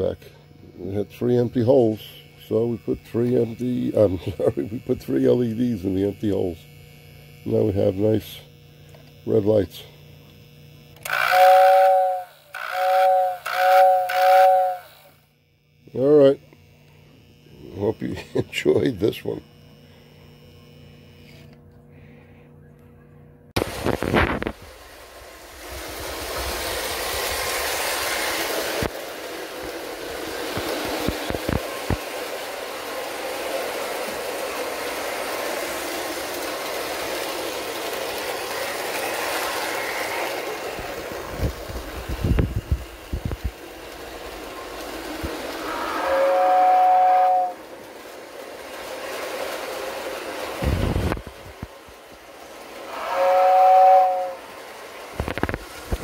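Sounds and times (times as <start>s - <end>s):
toy train rolling rattle: 11.0s - 15.1s, 25.6s - 56.0s
two-note electric train whistle: 11.0s - 15.2s, 45.6s - 47.7s, 52.9s - 54.5s.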